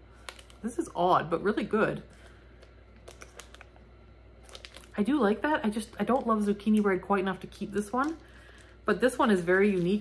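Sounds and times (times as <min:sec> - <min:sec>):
plastic packaging crinkling: 0:00.1 - 0:10.0.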